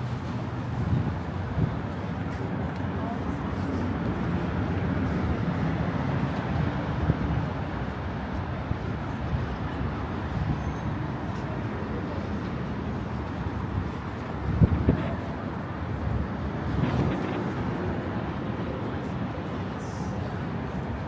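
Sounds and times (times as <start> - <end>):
passing vehicles rumble: 0.0 - 21.0.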